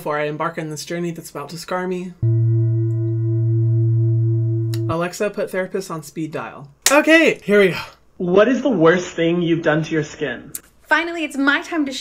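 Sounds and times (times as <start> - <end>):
low steady meditation hum: 2.2 - 5.0.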